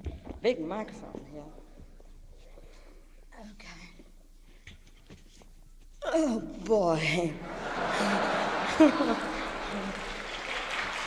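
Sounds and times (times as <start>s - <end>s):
low recording hiss: 0.0s - 11.0s.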